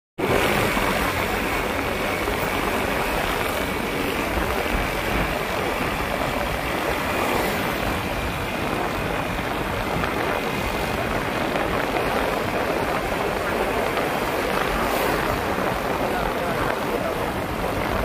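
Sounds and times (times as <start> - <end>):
motorcycle engine: 0.2 - 16.4
tyres on wet tarmac: 0.2 - 18.0
wind noise on microphone: 0.2 - 18.0.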